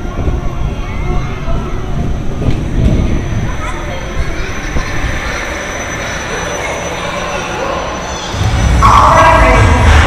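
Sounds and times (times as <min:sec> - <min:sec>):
roller coaster rumbling on track: 0:00.0 - 0:10.0.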